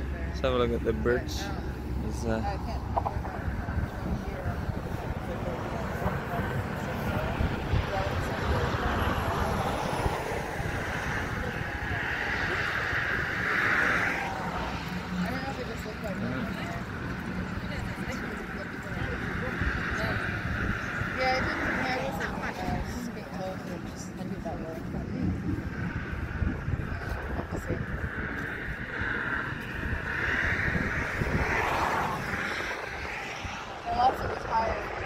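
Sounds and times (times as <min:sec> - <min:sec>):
people chattering: 0:00.0 - 0:35.0
road traffic: 0:00.0 - 0:35.0
vehicle passing: 0:00.0 - 0:35.0.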